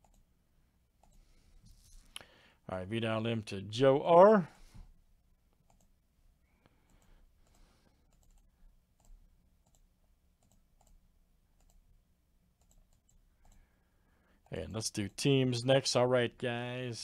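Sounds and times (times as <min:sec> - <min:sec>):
computer mouse and keyboard clicks: 0:06.9 - 0:09.8.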